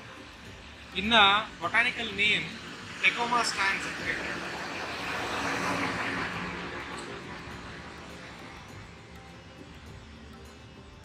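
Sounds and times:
motor vehicle passing: 0:00.4 - 0:10.8.

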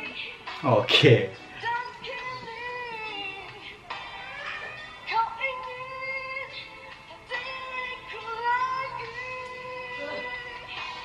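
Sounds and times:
woman singing a slow ballad: 0:00.0 - 0:00.6, 0:01.5 - 0:11.0.

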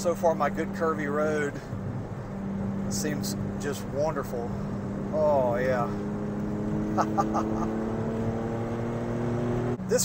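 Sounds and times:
car engine from inside cabin: 0:00.0 - 0:10.0.

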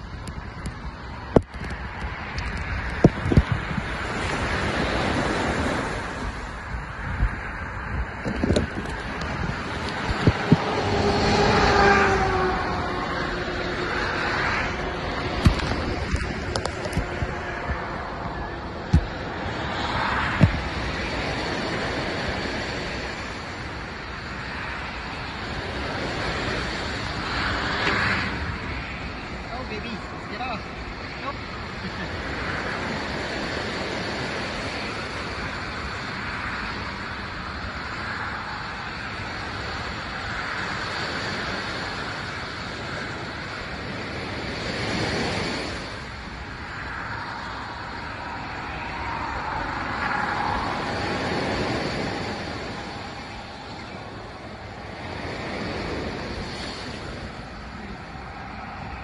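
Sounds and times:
ocean surf washing on shore: 0:00.0 - 0:59.0.

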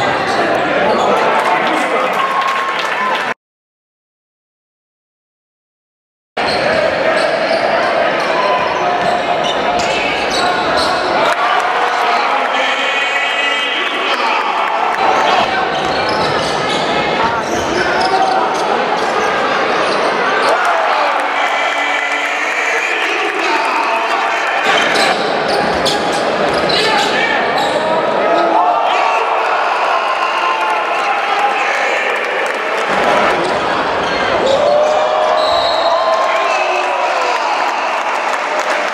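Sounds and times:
voices of players and spectators: 0:00.0 - 0:03.4, 0:06.4 - 0:38.9.

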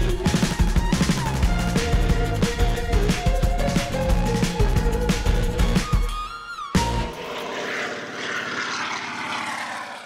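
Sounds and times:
propeller plane engine droning: 0:06.9 - 0:10.0.

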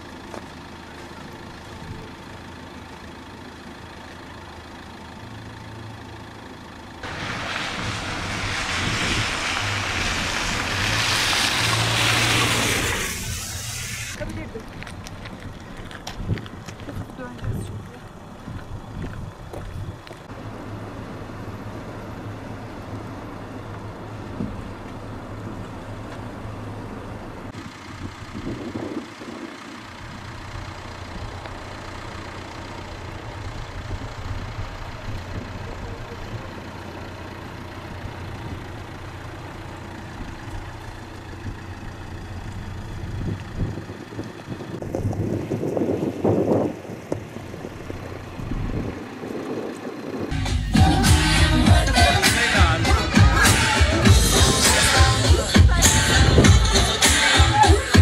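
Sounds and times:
vehicle engines humming: 0:00.0 - 0:58.0.

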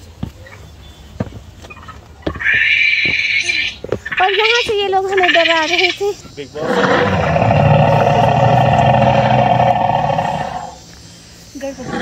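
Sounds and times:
big cat roar over loudspeaker: 0:06.6 - 0:10.8.

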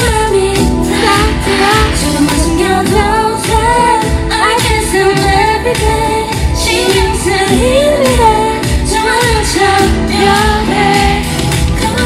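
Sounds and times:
pop backing track with beat: 0:00.0 - 0:12.0
woman singing into a microphone: 0:00.0 - 0:12.0.

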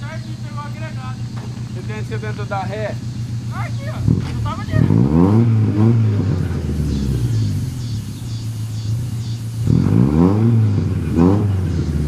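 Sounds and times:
car engine running and revving: 0:00.0 - 0:12.0.

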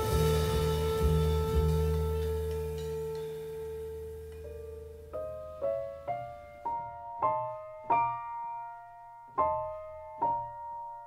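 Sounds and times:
tenor saxophone long note: 0:00.0 - 0:04.4
low musical accompaniment: 0:00.0 - 0:11.0.

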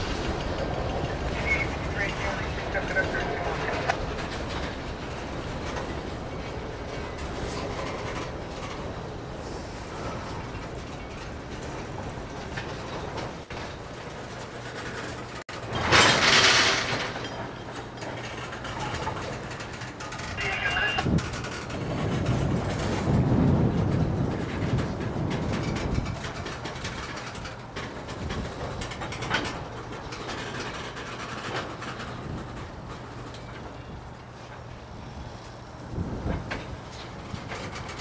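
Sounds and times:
freight train wheels rumbling: 0:00.0 - 0:38.0
loud rush of noise: 0:20.2 - 0:25.5.

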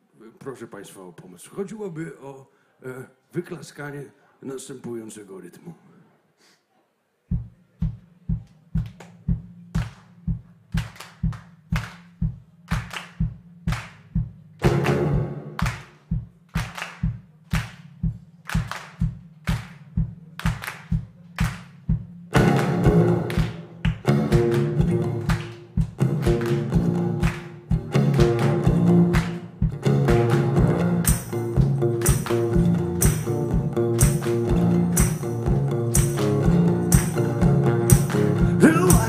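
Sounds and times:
low thud on each beat: 0:07.3 - 0:39.0
rhythmic hand clapping: 0:07.4 - 0:39.0
acoustic guitar strumming: 0:22.3 - 0:39.0.

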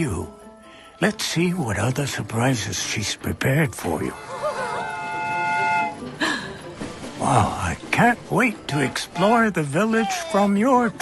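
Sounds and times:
steam train whistle: 0:04.2 - 0:06.1.

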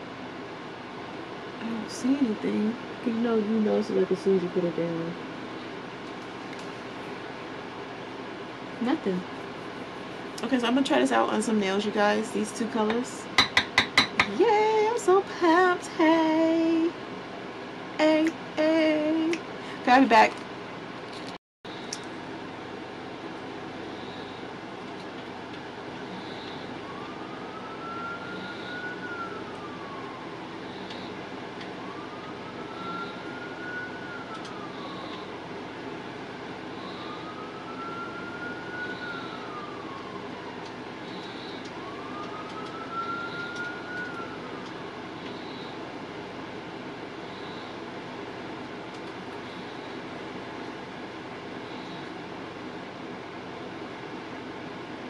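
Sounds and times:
siren wailing: 0:23.7 - 0:52.6.

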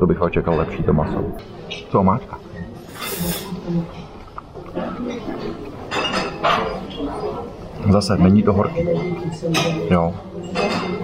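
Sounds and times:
fork scraping on a plate: 0:02.8 - 0:03.6.

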